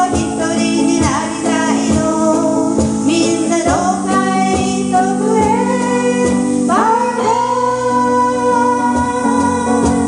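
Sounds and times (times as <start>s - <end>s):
electric guitars: 0.0s - 10.0s
woman singing pop melody: 0.0s - 10.0s.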